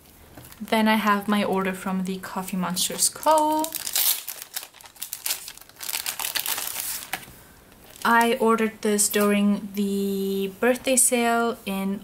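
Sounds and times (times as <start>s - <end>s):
plastic packaging crinkling: 0.0s - 1.7s, 2.7s - 8.4s.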